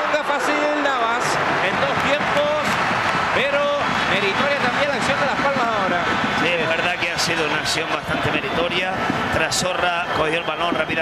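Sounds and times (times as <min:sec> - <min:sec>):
stadium crowd noise: 0:00.0 - 0:11.0
man commentating: 0:01.5 - 0:11.0.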